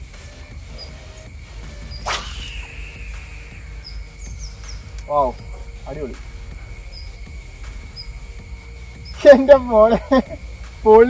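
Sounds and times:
faint bird chirps: 0.0s - 9.7s
fishing reel line whine: 0.6s - 8.4s
fishing rod swishing: 1.9s - 3.9s.

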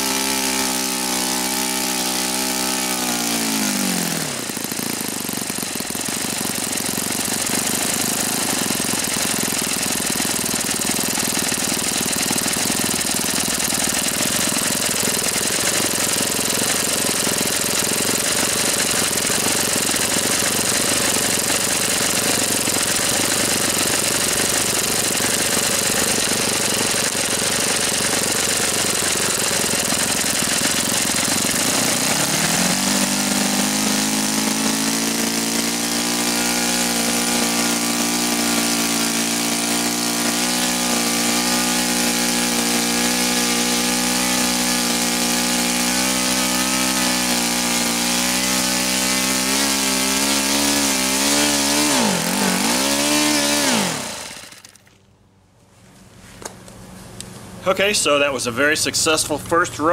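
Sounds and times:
model engine running at high speed: 0.0s - 54.9s.

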